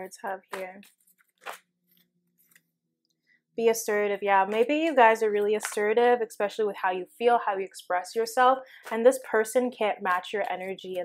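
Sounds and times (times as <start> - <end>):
card rustling: 0.5 - 2.7.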